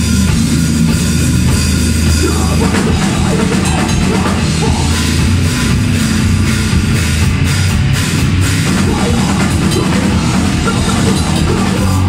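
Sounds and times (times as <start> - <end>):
grindcore band playing live: 0.0 - 12.0.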